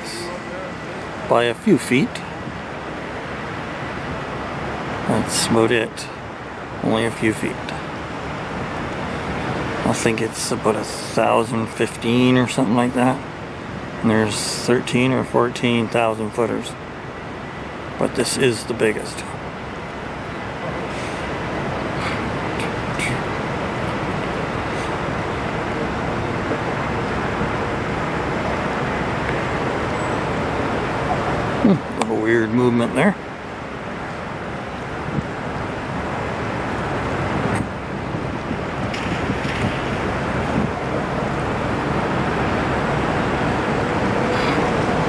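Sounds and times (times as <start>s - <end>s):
low outdoor rumble and hiss: 0.0s - 45.0s.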